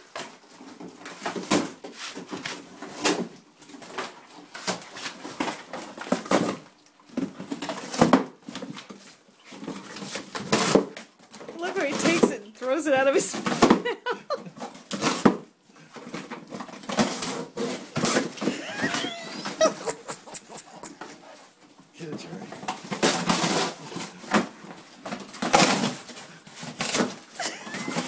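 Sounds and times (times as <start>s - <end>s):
dog tearing cardboard: 0.2s - 12.3s, 14.6s - 21.4s, 22.5s - 28.0s.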